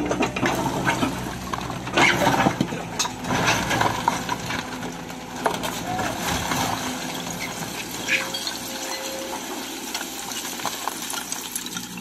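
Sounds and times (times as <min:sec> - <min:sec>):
excavator engine running: 0:00.0 - 0:12.0
bucket scooping rubble: 0:00.1 - 0:12.0
sliding debris rushing: 0:00.3 - 0:12.0.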